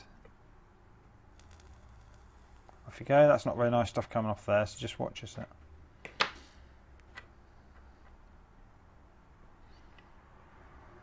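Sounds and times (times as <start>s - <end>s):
faint clicks and ticks: 1.4s - 2.8s.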